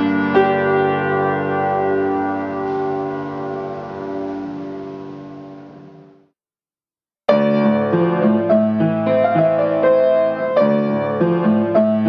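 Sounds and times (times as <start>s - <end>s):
grand piano chord ringing: 0.0s - 6.3s.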